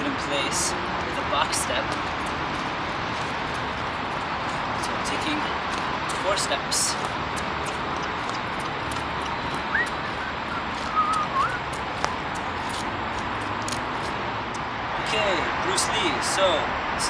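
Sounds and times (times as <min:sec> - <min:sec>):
city background noise: 0:00.0 - 0:17.0
light irregular ticks: 0:07.0 - 0:14.7.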